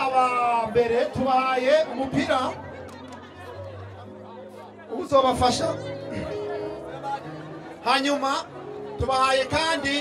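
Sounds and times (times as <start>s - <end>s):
chatter of people: 0.0s - 10.0s.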